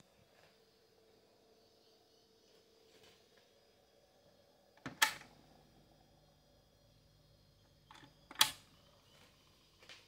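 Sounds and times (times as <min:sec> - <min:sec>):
record changer mechanism clicks: 0:04.8 - 0:05.3, 0:07.9 - 0:08.6.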